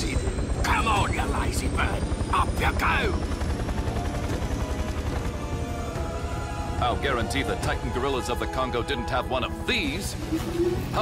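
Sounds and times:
helicopter rotor chop: 0:00.0 - 0:08.6
music: 0:00.0 - 0:11.0.

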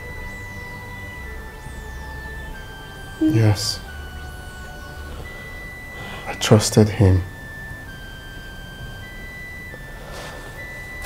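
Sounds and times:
faint low drone: 0:00.0 - 0:11.0
high synthesizer notes: 0:00.0 - 0:11.0.

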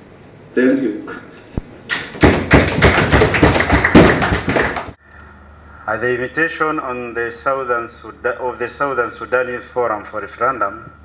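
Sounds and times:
small group applauding: 0:01.9 - 0:05.0.

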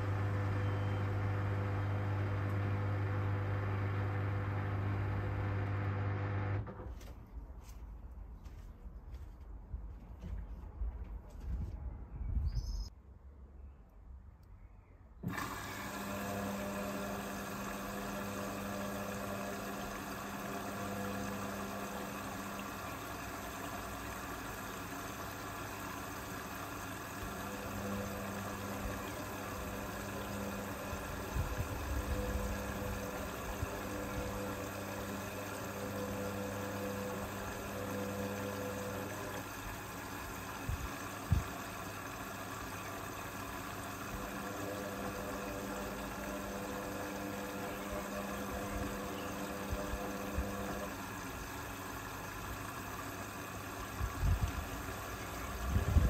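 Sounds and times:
washing machine drum motor humming: 0:00.0 - 0:06.8, 0:15.2 - 0:56.0.

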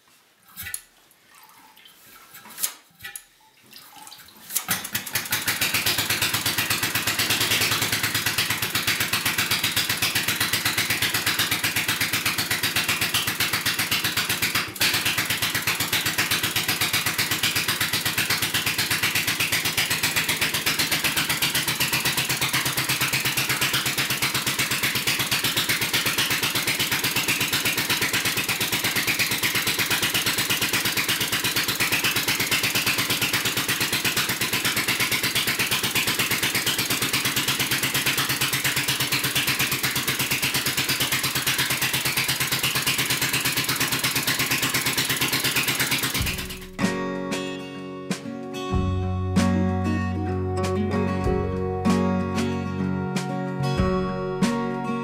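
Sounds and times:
single-cylinder boat engine running: 0:04.9 - 0:46.8.

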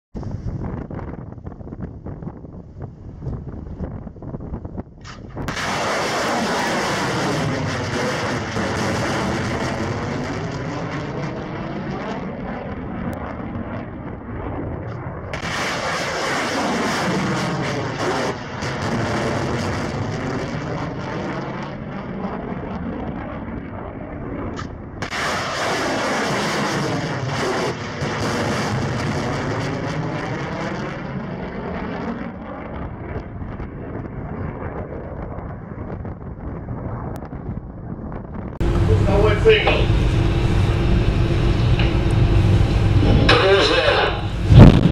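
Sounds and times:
rocket motor roar: 0:05.3 - 0:44.9.

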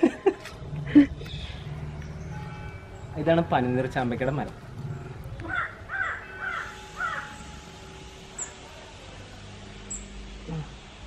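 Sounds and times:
crow cawing: 0:05.4 - 0:07.3.

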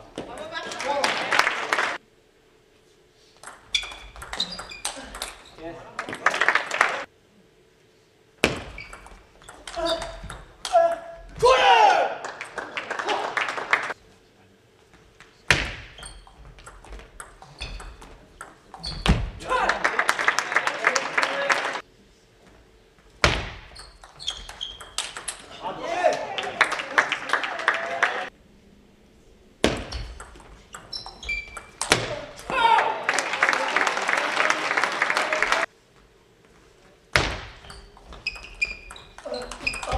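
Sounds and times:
voices in a hall: 0:00.0 - 0:03.5, 0:04.4 - 0:08.4, 0:18.2 - 0:23.0, 0:25.3 - 0:29.6, 0:31.8 - 0:38.2
table tennis ball clicking: 0:24.0 - 0:25.4.

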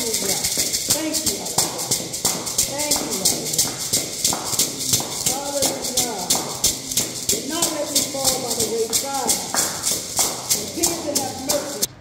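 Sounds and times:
beaded hand rattle shaking: 0:00.0 - 0:11.9
hand clapping: 0:00.0 - 0:11.9.

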